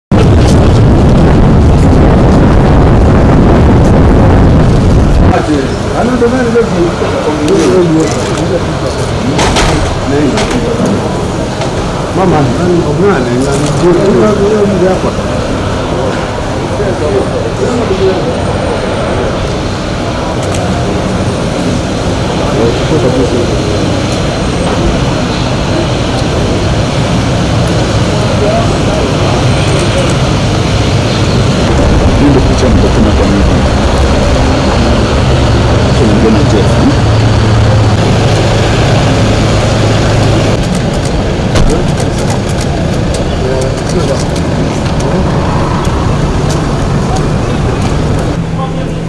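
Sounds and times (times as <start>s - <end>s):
indistinct voices: 0.1s - 49.0s
vehicles driving slowly past: 0.6s - 49.0s.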